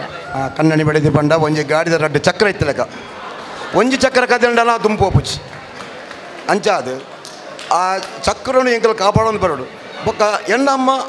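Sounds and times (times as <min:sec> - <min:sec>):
man speaking into a microphone: 0:00.2 - 0:03.0, 0:03.6 - 0:05.5, 0:06.5 - 0:07.1, 0:07.7 - 0:11.0.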